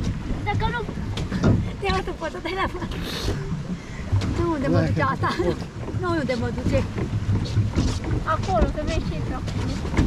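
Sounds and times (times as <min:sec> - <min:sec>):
paddle wheel churning water: 0:00.0 - 0:10.0.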